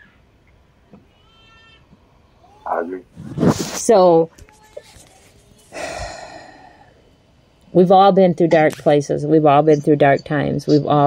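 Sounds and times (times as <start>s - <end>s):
person sighing: 5.7s - 7.0s.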